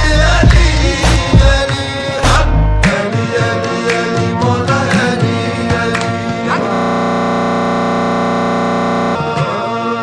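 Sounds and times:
distorted synthesizer chord: 6.6s - 9.2s.

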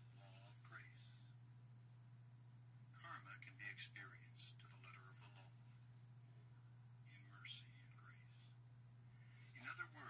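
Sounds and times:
steady low hum: 0.0s - 10.0s
person whispering: 0.2s - 1.3s, 3.0s - 5.6s, 7.1s - 8.6s, 9.5s - 10.0s.

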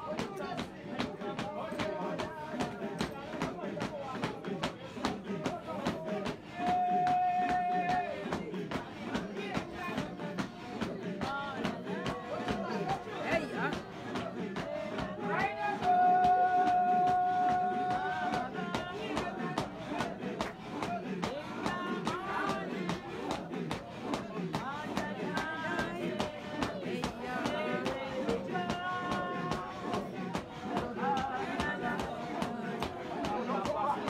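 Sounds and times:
congregation singing: 0.0s - 34.0s.

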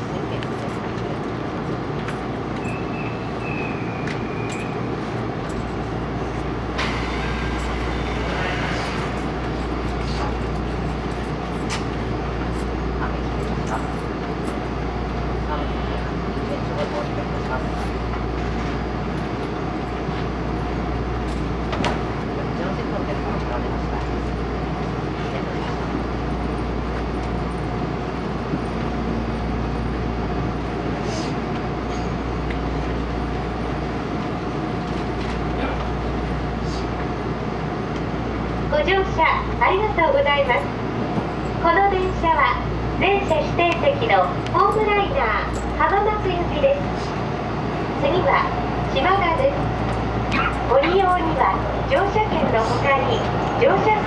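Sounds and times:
train hum: 0.0s - 54.0s.

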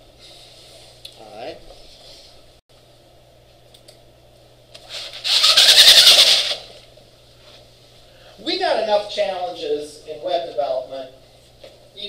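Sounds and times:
projection screen rattling whir: 4.7s - 7.0s.

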